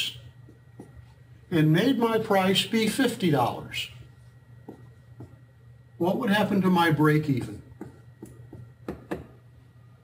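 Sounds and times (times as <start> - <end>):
marker strokes on a whiteboard: 7.3 - 8.7.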